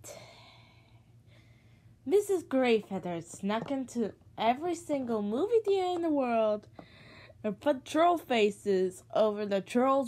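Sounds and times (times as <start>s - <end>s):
woman breathing: 0.0s - 2.0s, 6.7s - 7.4s.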